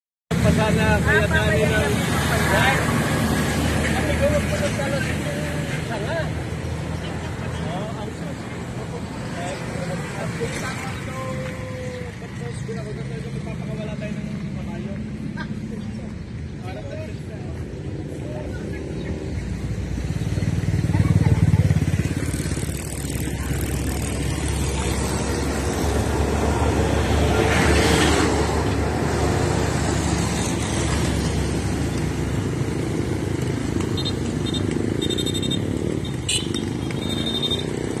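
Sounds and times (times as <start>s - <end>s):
motorcycles passing: 0.3s - 38.0s.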